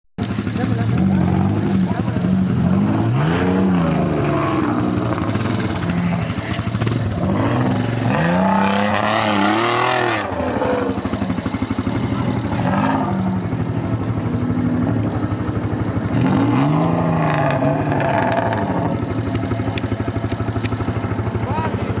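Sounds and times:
off-road vehicle engine revving: 0.2 - 22.0.

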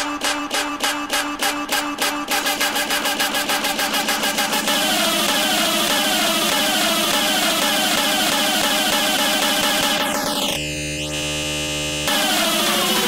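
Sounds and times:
buzzing synth chord: 0.0 - 13.0
gliding synth riff: 0.0 - 13.0
falling synth sweep: 2.3 - 13.0.

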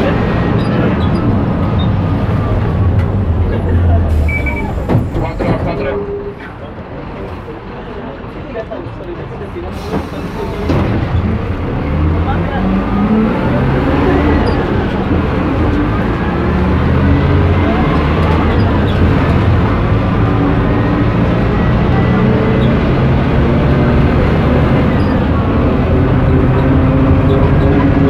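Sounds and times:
bus engine drone: 0.0 - 28.0.

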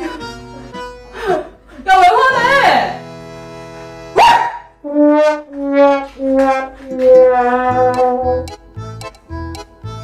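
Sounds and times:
held musical tone: 0.0 - 4.2, 4.8 - 10.0
dog bark rising in pitch: 4.2 - 4.8.

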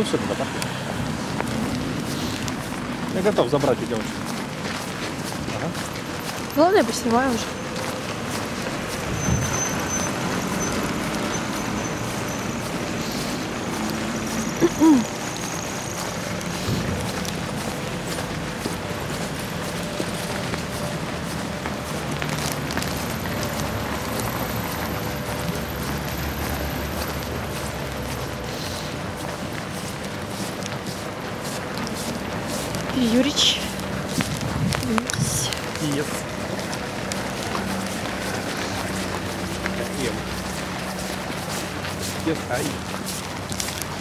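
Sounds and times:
car traffic: 0.0 - 44.0.

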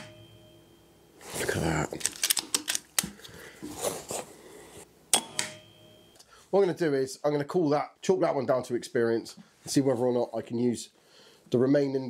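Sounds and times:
soft breath: 3.1 - 4.9, 11.0 - 11.5.

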